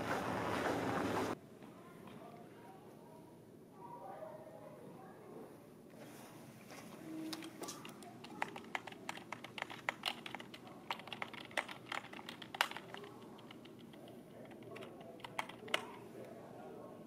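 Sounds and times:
typing on computer keyboard: 7.3 - 16.0.

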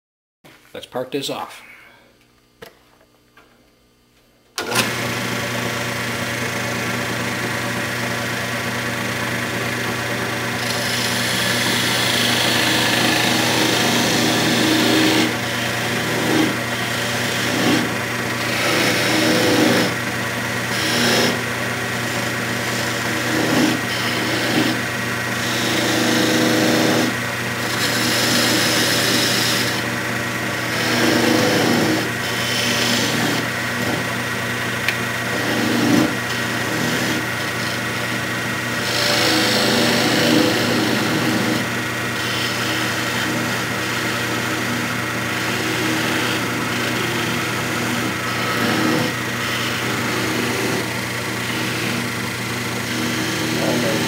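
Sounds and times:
turning tool cutting wood: 4.6 - 54.0
wood lathe humming: 4.6 - 54.0.

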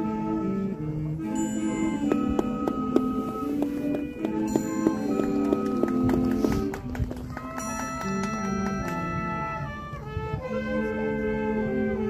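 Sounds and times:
marching band wind chord: 0.0 - 12.0
light clicking percussion: 1.9 - 9.1.

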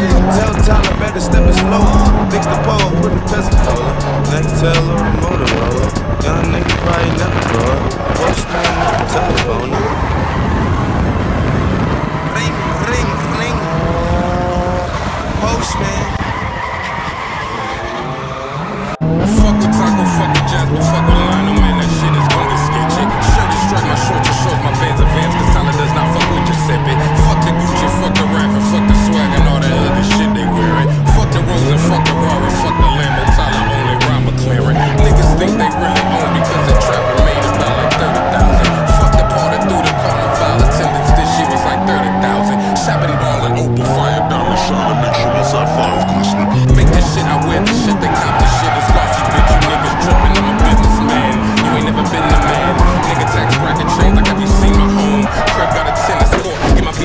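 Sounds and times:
car engine revving: 0.0 - 57.0
tyres squealing: 0.0 - 57.0.

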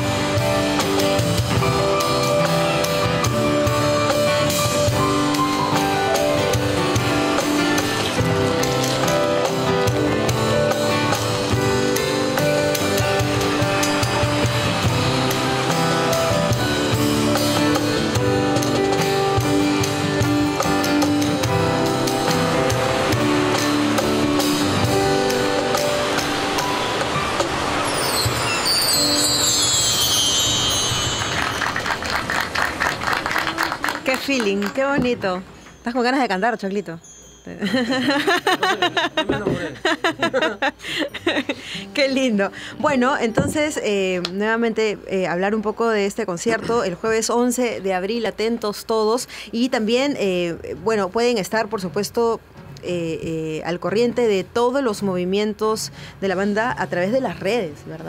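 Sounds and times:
live band playing instrumental: 0.0 - 35.8.

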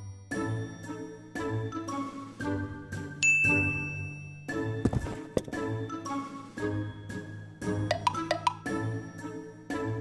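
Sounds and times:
soft children's music: 0.0 - 10.0
high bell-like ding: 3.2 - 4.5.

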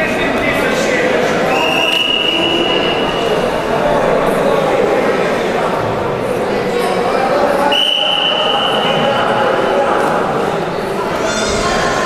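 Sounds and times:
murmur of sports hall: 0.0 - 12.0
referee's whistle blast: 1.5 - 3.1.

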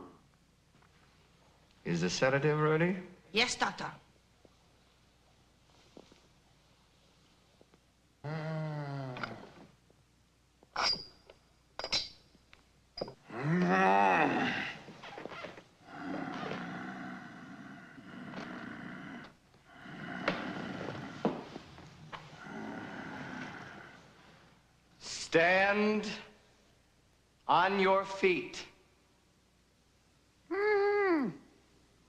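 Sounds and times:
man groaning and grunting: 8.2 - 9.5, 13.2 - 14.9, 15.8 - 21.2, 30.5 - 31.4.

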